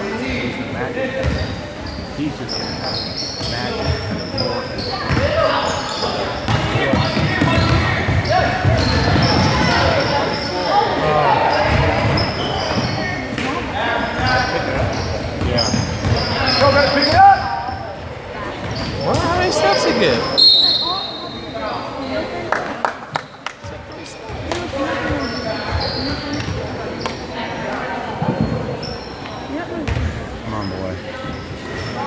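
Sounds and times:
voices of players and spectators: 0:00.0 - 0:32.0.

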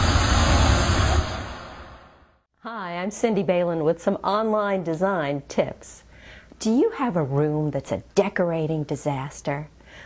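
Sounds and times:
deep rumble: 0:00.0 - 0:02.4
loud rushing noise: 0:00.0 - 0:02.4.

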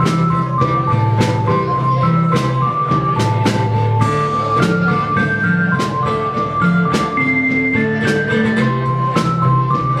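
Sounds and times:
drum and cymbal hits: 0:00.0 - 0:10.0
held keyboard notes: 0:00.0 - 0:10.0
live rock band playing: 0:00.0 - 0:10.0.

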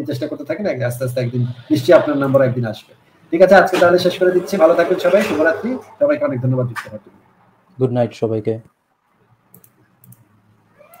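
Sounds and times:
faint clicks: 0:09.5 - 0:10.3.

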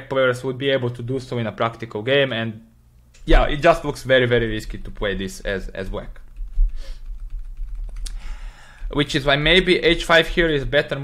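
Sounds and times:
low steady hum: 0:00.0 - 0:11.0
computer keys clicking: 0:06.2 - 0:08.2.

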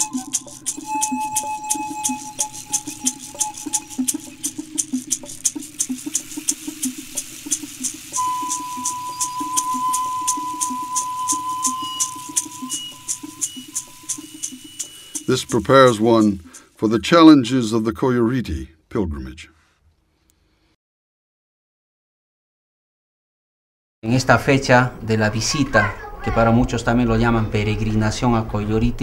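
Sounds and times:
high held tone: 0:00.0 - 0:05.4, 0:08.1 - 0:16.6
shaker rattle beating: 0:00.0 - 0:17.2.

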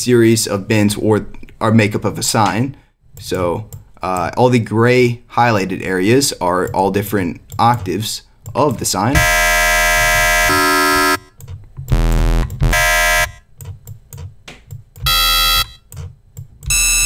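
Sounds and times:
buzzy synthesizer notes: 0:09.2 - 0:13.4.

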